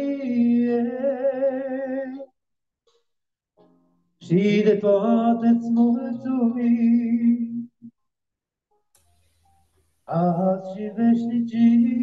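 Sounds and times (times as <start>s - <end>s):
man singing into a microphone: 0.0s - 2.3s, 4.2s - 7.8s, 10.1s - 12.0s.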